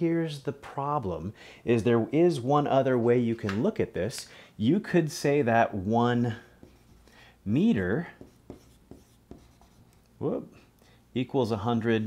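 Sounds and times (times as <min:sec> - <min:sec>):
marker writing on whiteboard: 0:06.3 - 0:07.1, 0:07.9 - 0:10.0.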